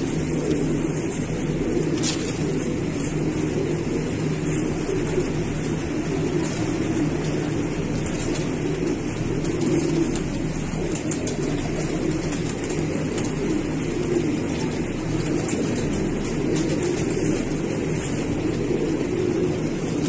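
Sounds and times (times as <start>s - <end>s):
pigeons cooing: 0.0s - 20.0s.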